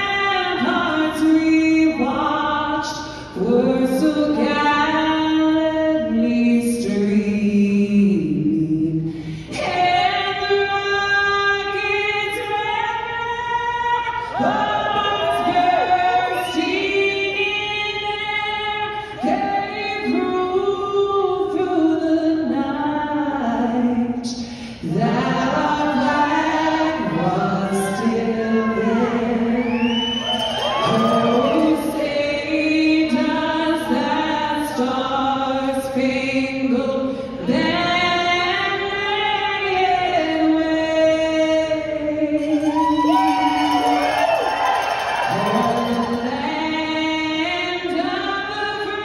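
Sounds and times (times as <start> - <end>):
woman singing into a microphone: 0.0 - 44.4, 45.3 - 49.0.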